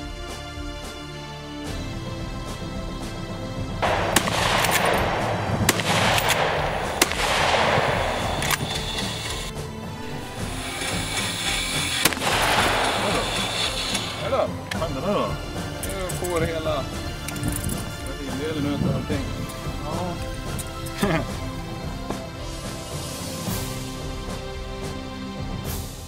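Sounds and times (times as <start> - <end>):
background music: 0.0 - 26.0
sharp rifle shots: 3.8 - 9.5, 11.8 - 14.2.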